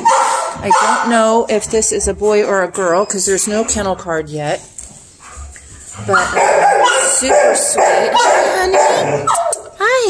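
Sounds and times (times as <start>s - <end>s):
dog whining: 6.0s - 9.7s.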